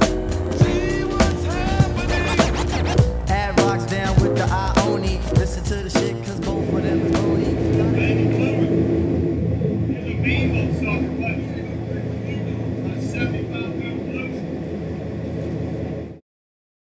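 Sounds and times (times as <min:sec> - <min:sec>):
indistinct voices: 0:00.0 - 0:14.6
boat engine running: 0:00.0 - 0:16.2.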